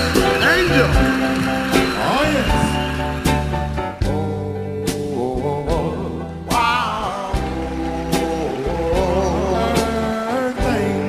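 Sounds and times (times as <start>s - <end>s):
band playing steady chords: 0.0s - 11.0s.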